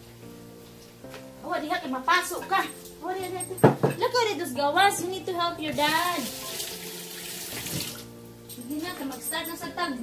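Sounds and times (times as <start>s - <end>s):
water running from a tap: 5.7s - 8.1s.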